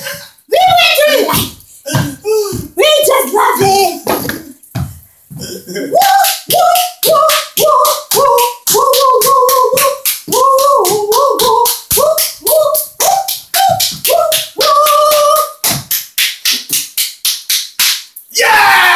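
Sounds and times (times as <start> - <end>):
high wordless singing: 0.0 - 4.6, 5.3 - 15.9
fast clicking beat: 6.0 - 17.9.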